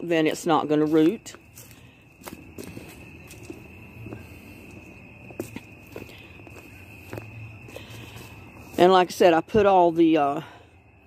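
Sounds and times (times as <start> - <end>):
footsteps on flagstones and dirt: 0.0 - 10.4.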